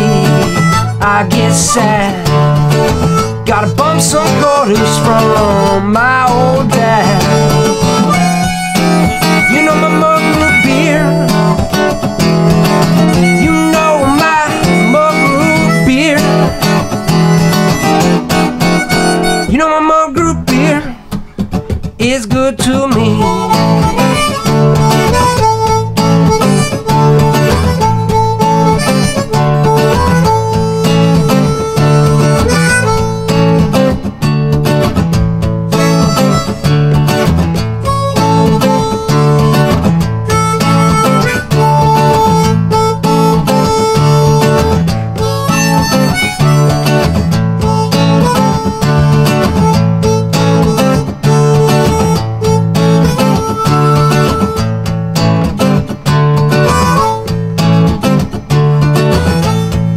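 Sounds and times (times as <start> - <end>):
harmonica solo: 0.0 - 21.1, 23.0 - 59.9
acoustic guitar strumming: 0.0 - 59.9.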